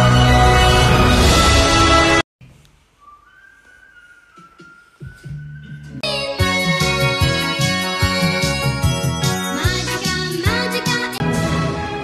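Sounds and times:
music: 0:00.0 - 0:12.0
faint thin whistling tone: 0:02.9 - 0:05.9.

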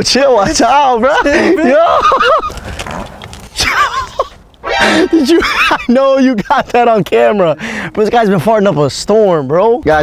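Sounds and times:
people laughing: 0:01.0 - 0:02.6, 0:03.6 - 0:07.1.

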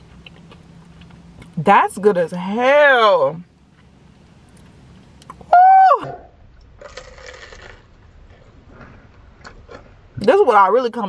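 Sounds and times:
quiet crunchy chewing: 0:00.0 - 0:01.6, 0:03.6 - 0:05.4, 0:06.7 - 0:10.0.

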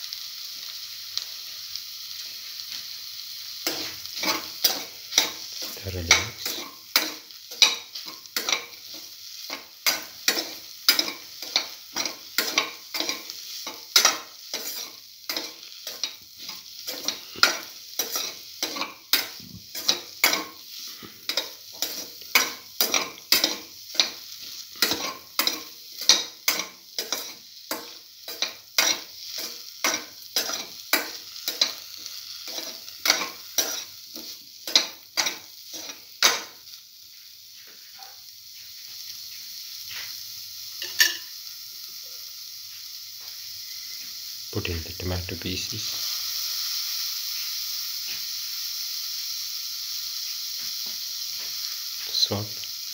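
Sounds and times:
oil sizzling in a pan: 0:00.0 - 0:52.9
spoon scraping a pan: 0:03.6 - 0:36.6, 0:40.8 - 0:41.4.

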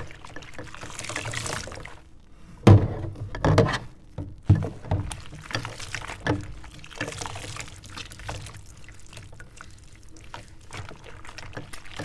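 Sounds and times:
hands sloshing in dishwater: 0:00.0 - 0:02.1, 0:04.0 - 0:12.0.

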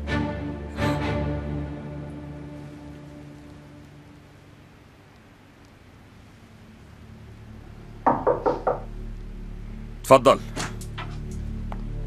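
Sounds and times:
knocks on a door: 0:08.0 - 0:08.9.

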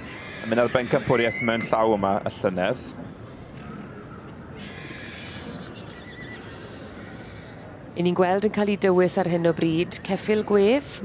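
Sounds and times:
horse whinnying: 0:00.0 - 0:01.9, 0:03.6 - 0:07.9.

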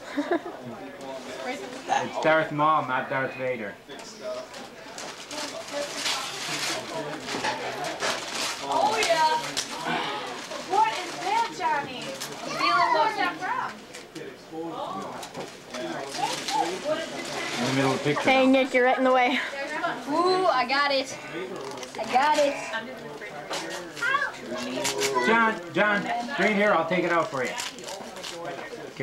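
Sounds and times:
other voices: 0:06.8 - 0:26.4
young child's high voice: 0:12.4 - 0:13.4, 0:24.0 - 0:25.3.

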